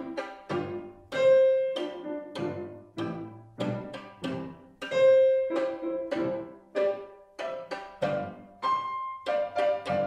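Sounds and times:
violin and piano classical music: 0.0s - 10.0s.

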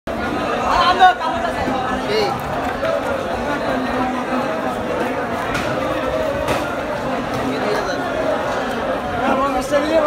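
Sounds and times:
voices chattering: 0.1s - 10.0s.

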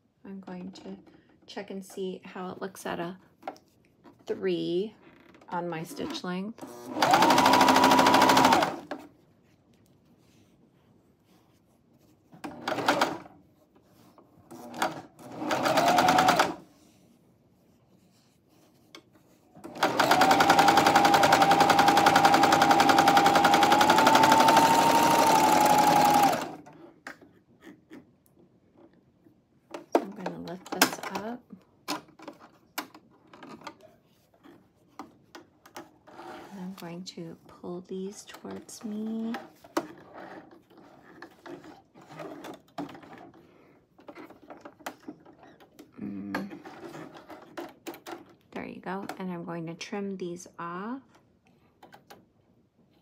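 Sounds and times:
sewing machine needle strokes: 19.7s - 26.5s.

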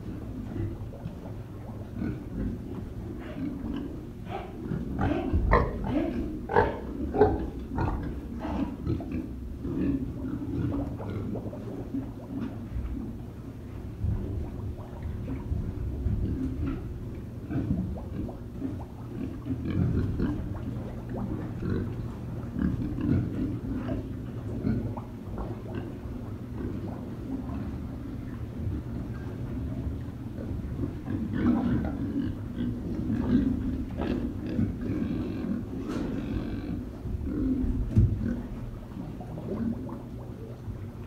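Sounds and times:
pigs grunting: 0.4s - 13.3s, 14.0s - 29.7s, 30.6s - 40.4s.

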